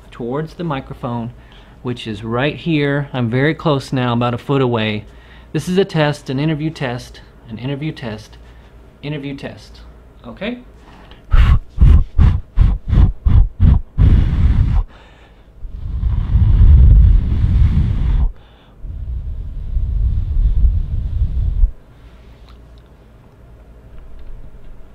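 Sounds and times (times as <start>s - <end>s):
low rumbling noise: 11.3s - 22.1s
low thumps on microphone: 11.4s - 14.9s.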